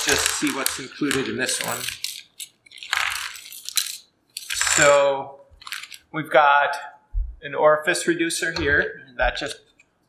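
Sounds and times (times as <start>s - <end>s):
plastic bag crinkling: 0.0s - 5.0s, 5.6s - 6.1s.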